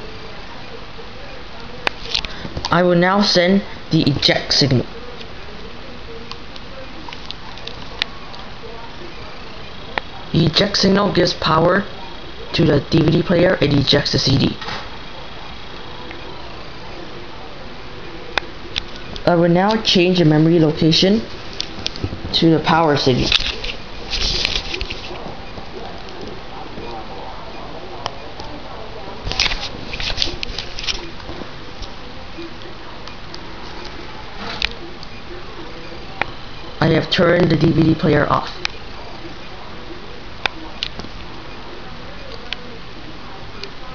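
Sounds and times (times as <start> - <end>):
clicks and rustles of handling: 23.1 - 26.9, 29.3 - 32.0.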